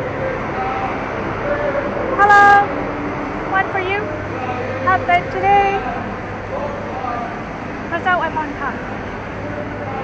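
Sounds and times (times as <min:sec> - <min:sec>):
city traffic hum: 0:00.0 - 0:10.0.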